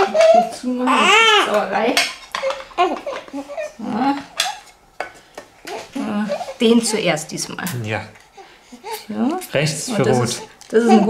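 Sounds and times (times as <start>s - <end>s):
baby crying: 0.0s - 1.8s, 2.4s - 4.7s, 5.6s - 7.2s, 8.3s - 11.0s.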